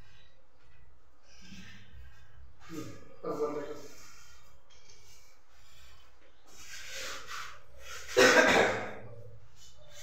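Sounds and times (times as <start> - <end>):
loud cough: 8.1 - 9.1.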